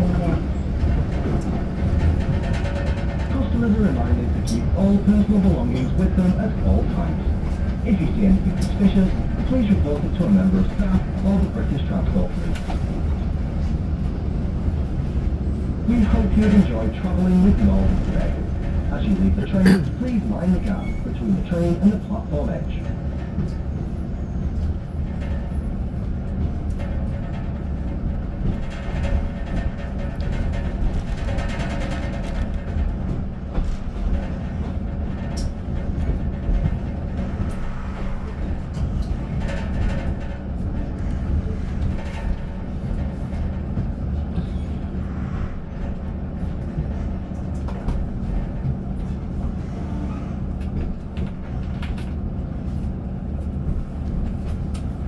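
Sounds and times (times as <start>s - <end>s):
train wheels rumbling on rails: 0.0s - 55.0s
wheels clicking over track joints: 24.6s - 44.7s.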